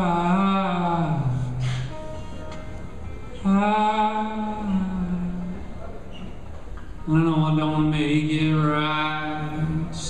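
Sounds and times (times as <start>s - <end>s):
man singing a long note: 3.4s - 5.6s, 7.0s - 10.0s.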